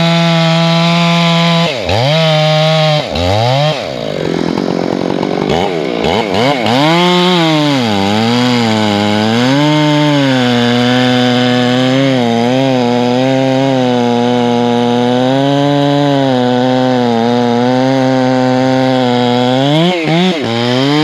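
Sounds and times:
chainsaw cutting logs: 0.0s - 21.0s.

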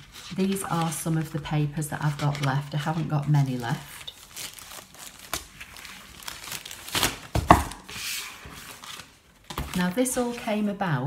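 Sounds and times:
paper rustling: 0.0s - 10.8s.

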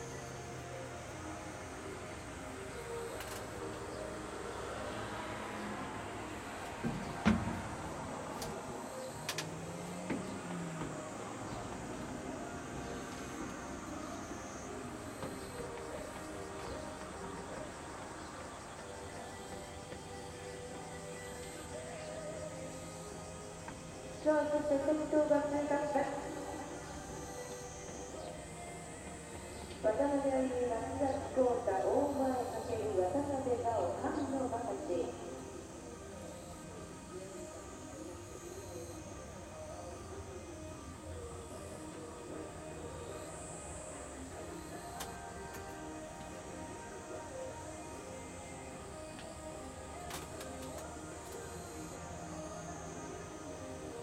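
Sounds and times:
background music: 0.0s - 54.0s.

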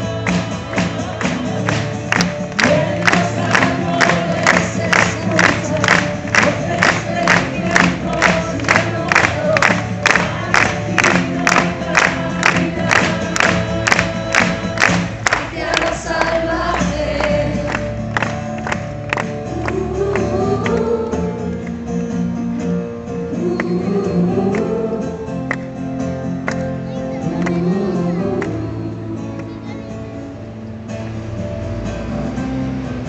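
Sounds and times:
woman singing: 0.0s - 17.9s, 19.5s - 21.6s, 23.3s - 25.6s, 27.1s - 29.7s
crowd singing along: 0.0s - 18.8s, 19.4s - 22.0s, 23.1s - 25.9s
crowd clapping along: 0.0s - 22.3s, 23.4s - 29.6s
acoustic guitar: 0.0s - 33.0s.

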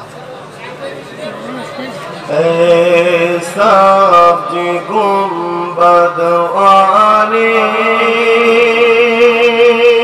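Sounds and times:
man chanting: 2.3s - 10.0s.

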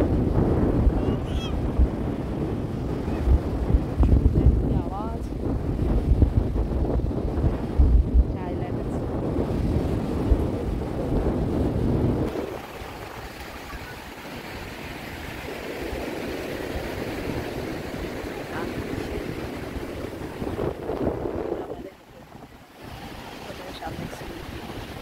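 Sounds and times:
surf breaking on beach: 0.0s - 25.0s
wind buffeting microphone: 0.0s - 25.0s.

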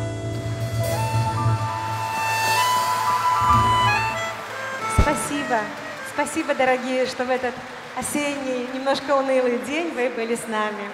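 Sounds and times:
double bass: 0.0s - 5.4s
wind instrument holding high note: 0.5s - 6.4s
audience applause: 1.7s - 10.9s
drum kit: 4.8s - 5.8s.

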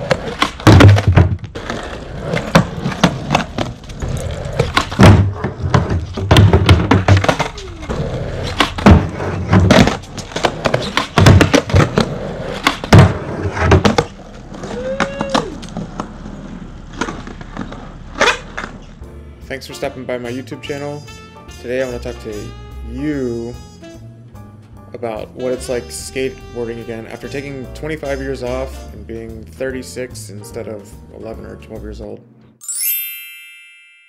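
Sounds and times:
skateboard clacks and slaps: 0.0s - 18.9s
skateboard rolling on concrete: 0.0s - 21.0s.

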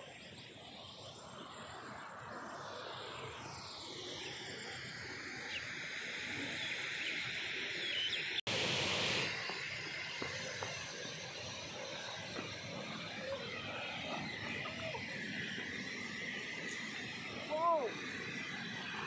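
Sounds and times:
outdoor background hiss: 5.4s - 19.0s
insects chirring: 9.1s - 19.0s.

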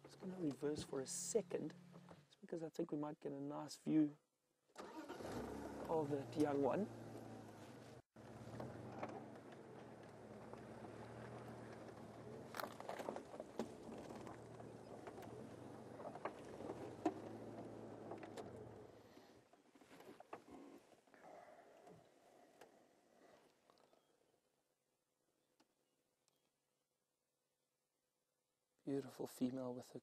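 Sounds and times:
vehicle engine running faintly: 4.8s - 19.2s
crackles and clicks: 8.2s - 18.8s.

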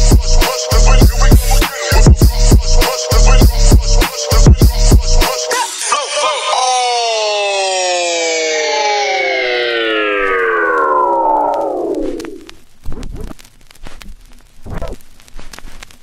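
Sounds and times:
synthesizer chord sliding down: 4.3s - 12.6s
scattered crackles: 7.6s - 16.0s.

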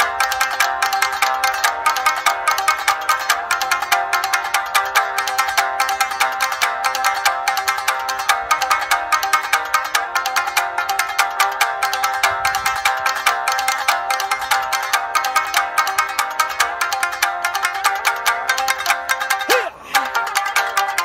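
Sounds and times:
plucked shamisen playing: 0.0s - 21.0s.

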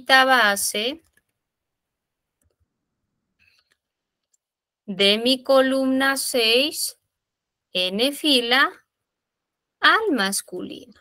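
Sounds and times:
faint keyboard clicks: 1.0s - 1.4s, 2.4s - 2.7s.

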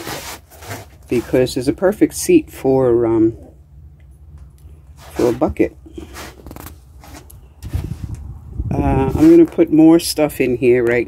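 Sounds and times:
faint rustling and scraping: 0.0s - 1.8s, 4.1s - 10.6s.

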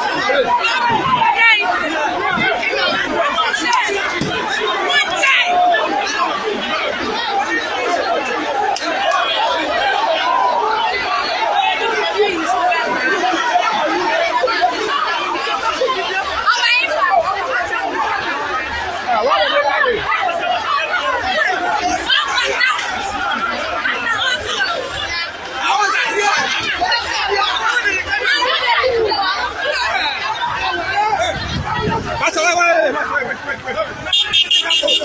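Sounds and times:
crowd chatter: 0.0s - 35.0s.

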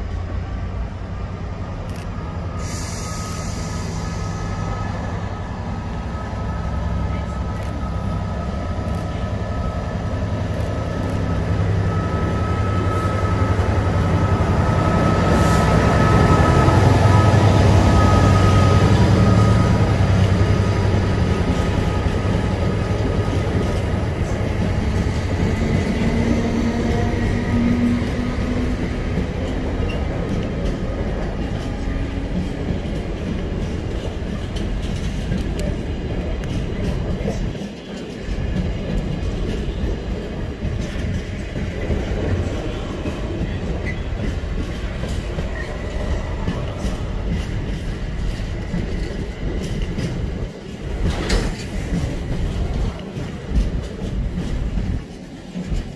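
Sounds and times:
diesel locomotive engine passing: 0.0s - 55.9s
wagons rumbling on rails: 0.0s - 55.9s.

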